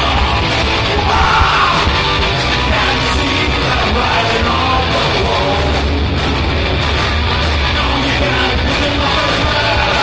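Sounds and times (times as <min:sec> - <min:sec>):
lead vocal singing: 0:00.0 - 0:06.0, 0:07.7 - 0:10.0
live rock band playing: 0:00.0 - 0:10.0.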